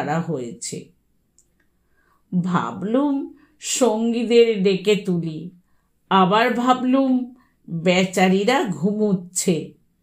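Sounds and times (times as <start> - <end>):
person narrating: 0.0 - 0.9, 2.3 - 5.5, 6.1 - 9.7.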